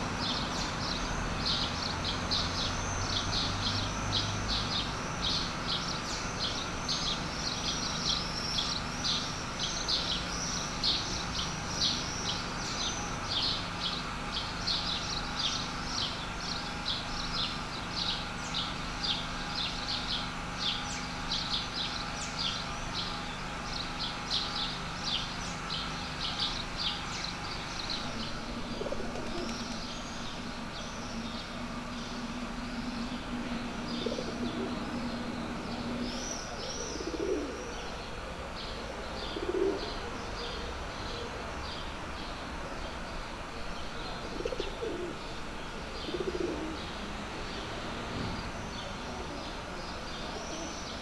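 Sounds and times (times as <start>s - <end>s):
city background noise: 0.0s - 51.0s
low steady hum: 0.0s - 51.0s
small birds chirping: 0.0s - 51.0s
pigeon cooing: 28.1s - 29.8s, 33.3s - 38.0s, 38.8s - 40.6s, 44.2s - 47.0s.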